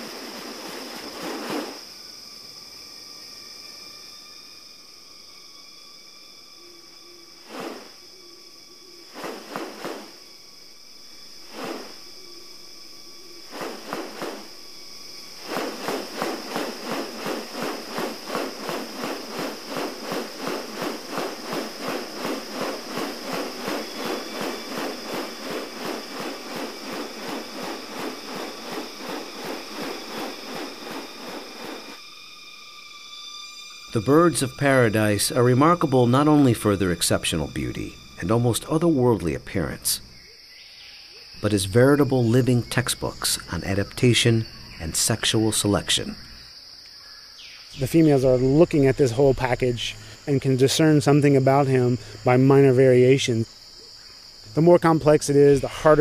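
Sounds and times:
high insect drone: 0.0 - 56.0
bird pulsing display sounds: 15.3 - 34.3.

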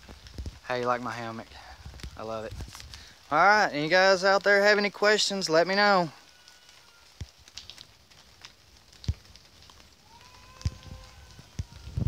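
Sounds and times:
faint clicks and crackles: 0.0 - 12.0.

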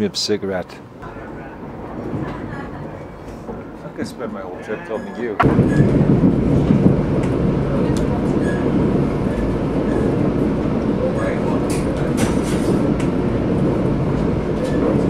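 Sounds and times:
train rumbling and rattling: 1.1 - 4.6, 5.4 - 15.0.

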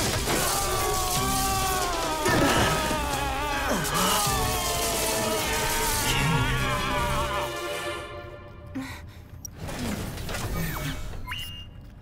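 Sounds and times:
dramatic background music: 0.0 - 9.1.

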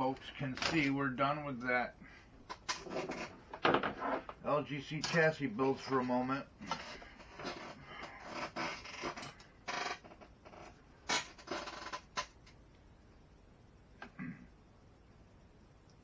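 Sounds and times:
scraping and rustling on workbench: 2.7 - 4.4.

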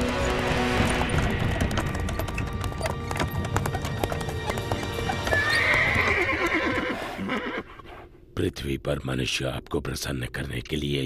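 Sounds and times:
background music: 0.0 - 7.0
hooves clip-clopping: 0.0 - 7.2
horse whinnying: 4.9 - 8.0.

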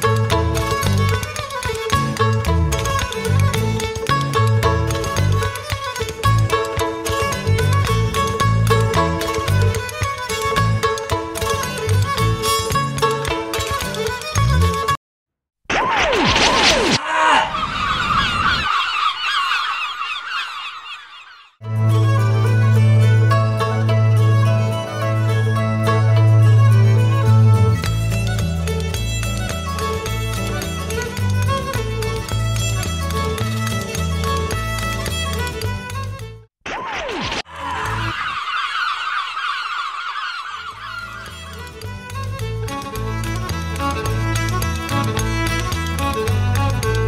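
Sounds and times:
high warbling tone: 15.7 - 21.6
geese honking: 37.9 - 41.5.

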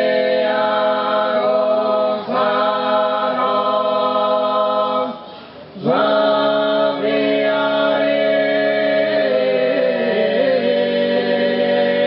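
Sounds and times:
male voices singing a cappella: 0.0 - 5.2, 5.8 - 12.0.

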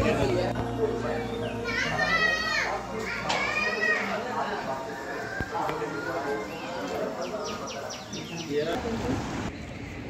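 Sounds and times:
background music: 0.0 - 5.3
children calling out: 1.6 - 4.5.

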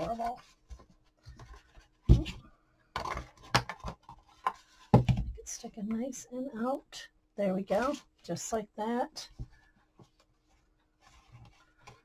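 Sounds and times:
paper rustling: 10.0 - 12.0.

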